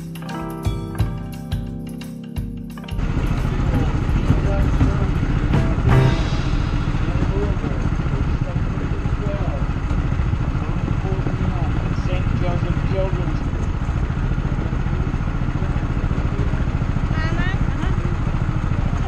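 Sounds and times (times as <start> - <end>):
background music: 0.0 - 9.0
go-kart engine running: 3.0 - 19.0.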